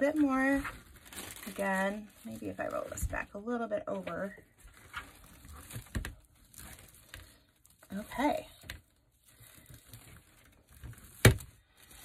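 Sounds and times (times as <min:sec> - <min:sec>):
mesh rustling and crinkling: 0:00.0 - 0:12.0.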